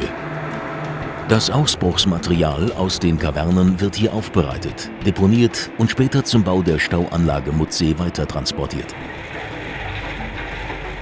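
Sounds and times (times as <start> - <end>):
heavy machinery running: 0.0 - 4.4, 8.9 - 11.0.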